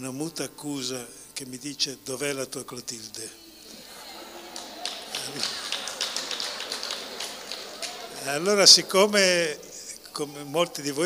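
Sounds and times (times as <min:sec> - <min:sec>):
audience clapping: 0:03.7 - 0:09.8.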